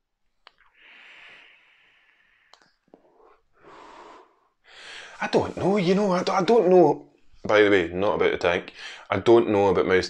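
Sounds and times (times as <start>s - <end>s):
short breaths: 0.7s - 5.2s, 8.8s - 9.1s.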